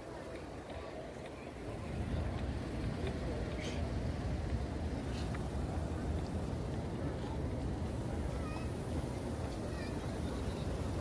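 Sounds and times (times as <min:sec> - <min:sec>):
distant voices: 0:00.0 - 0:11.0
low crowd rumble: 0:00.0 - 0:11.0.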